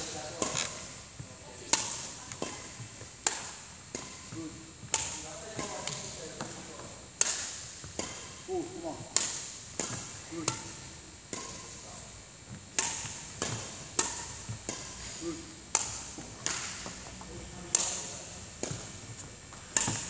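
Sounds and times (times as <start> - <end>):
racket striking shuttlecocks: 0.0 - 20.0.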